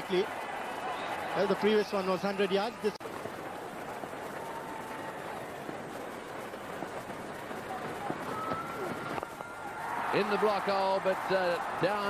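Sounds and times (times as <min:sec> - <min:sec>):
stadium crowd hubbub: 0:00.0 - 0:12.0.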